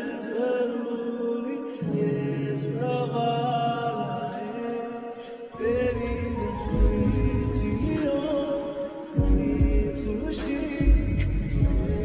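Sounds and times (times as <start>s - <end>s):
person singing long notes: 0.0s - 12.0s
slowed lofi backing music: 6.0s - 12.0s.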